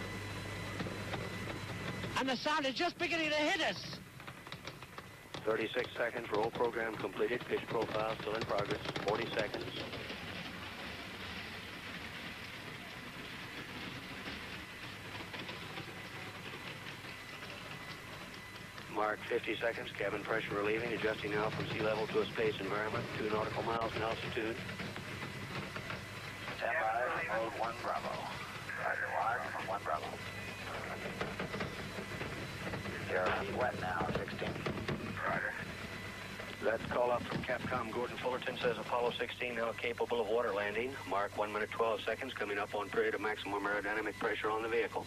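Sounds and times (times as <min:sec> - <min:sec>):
distant rocket engine rumble: 0:04.0 - 0:41.5.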